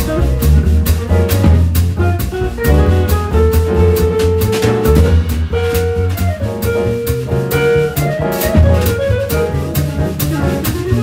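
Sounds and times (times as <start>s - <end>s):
jazz guitar: 0.0s - 11.0s
piano: 0.0s - 11.0s
walking double bass: 0.0s - 11.0s.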